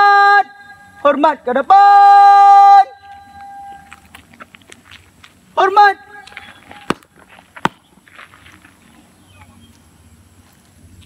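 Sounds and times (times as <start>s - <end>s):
faint steady tone: 0.0s - 11.0s
shoes tapping on asphalt: 3.1s - 10.7s.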